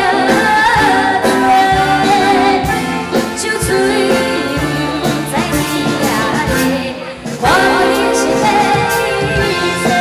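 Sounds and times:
amplified backing music: 0.0s - 10.0s
woman singing into microphone: 0.0s - 10.0s.

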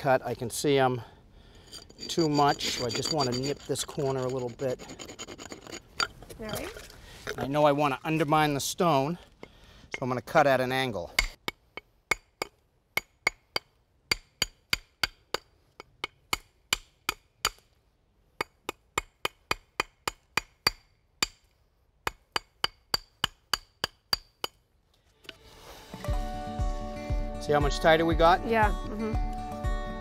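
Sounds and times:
hammer chipping stone: 22.1s - 24.6s.

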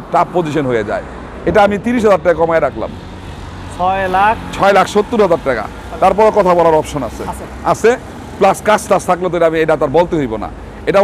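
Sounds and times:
man talking: 0.0s - 3.0s, 3.7s - 11.0s.

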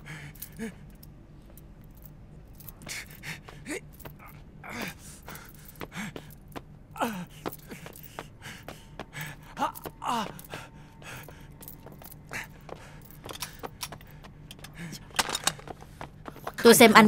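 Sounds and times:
men gasping breaths: 0.0s - 16.6s
quick footsteps on concrete: 2.7s - 16.7s.

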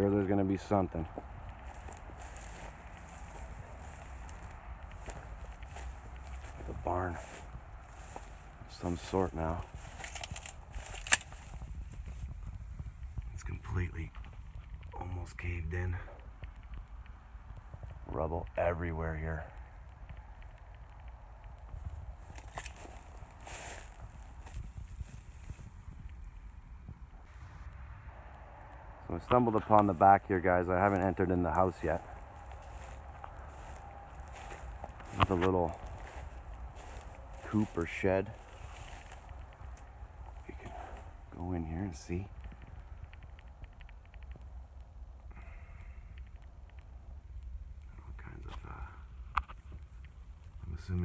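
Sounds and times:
footsteps through dry grass: 0.0s - 45.2s
wind rumble on microphone: 0.0s - 51.0s.

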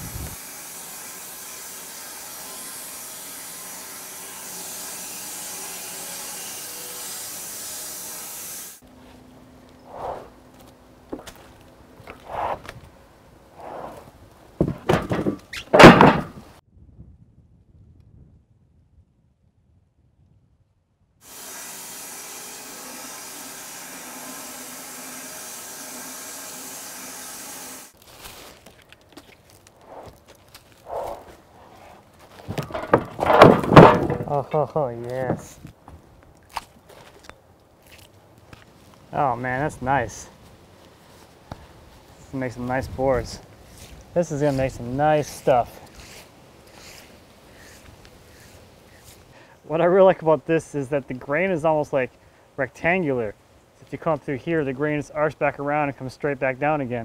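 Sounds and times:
bandsaw mill cutting log: 0.0s - 8.8s, 21.2s - 28.0s, 32.4s - 35.6s, 45.3s - 49.2s
wooden knocks and thunks: 14.6s - 16.5s, 32.4s - 34.6s, 35.2s - 35.7s.

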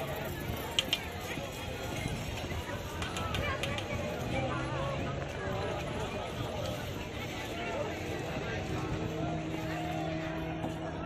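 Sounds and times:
crowd chatter: 0.0s - 11.0s
steady engine hum: 0.0s - 11.0s.

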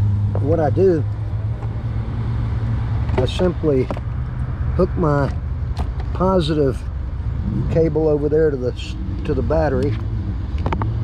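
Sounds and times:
vehicle engine idling: 0.0s - 10.8s
faint road traffic: 0.0s - 11.0s.

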